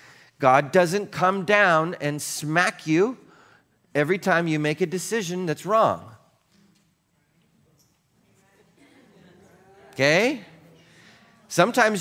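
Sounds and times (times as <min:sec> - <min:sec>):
man speaking: 0:00.4 - 0:03.3, 0:03.9 - 0:06.3, 0:09.8 - 0:10.6, 0:11.5 - 0:12.0.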